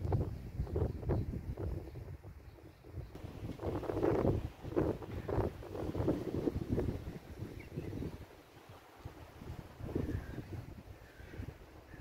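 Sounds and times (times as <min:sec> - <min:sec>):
wind buffeting the microphone: 0:00.0 - 0:12.0.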